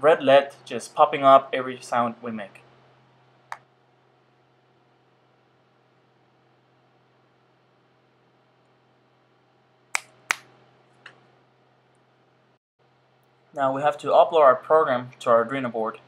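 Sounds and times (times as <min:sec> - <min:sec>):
finger snaps: 0:10.0 - 0:10.5.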